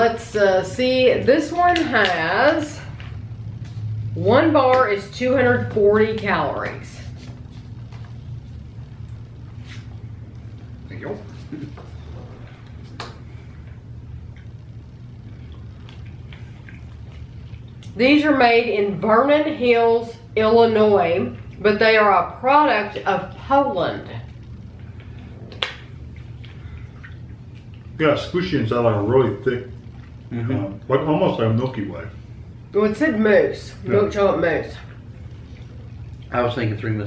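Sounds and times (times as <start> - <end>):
low room hum: 0.0 - 37.0
people chewing candy: 7.0 - 18.0, 24.3 - 31.8, 34.7 - 36.8.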